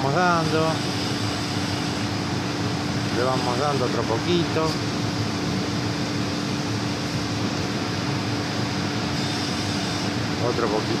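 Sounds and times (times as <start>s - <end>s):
compressor humming: 0.0s - 11.0s
condenser fan noise: 0.0s - 11.0s.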